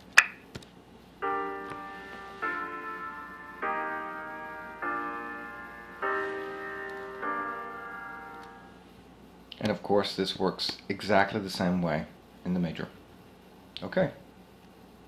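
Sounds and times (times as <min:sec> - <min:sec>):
synthesized chord progression: 0:01.2 - 0:08.9.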